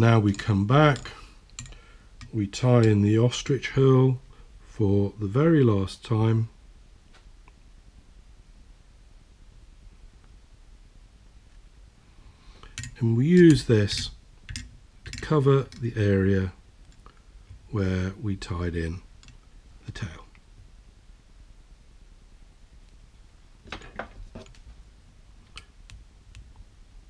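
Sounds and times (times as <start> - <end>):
faint sharp clicks of metal tools: 0.2 - 3.0, 12.6 - 16.0, 19.2 - 19.5.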